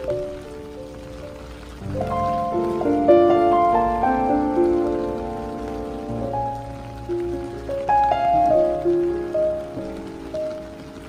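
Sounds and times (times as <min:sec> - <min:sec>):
rain falling on pavement: 0:00.0 - 0:11.0
slow gentle solo piano: 0:00.0 - 0:11.0.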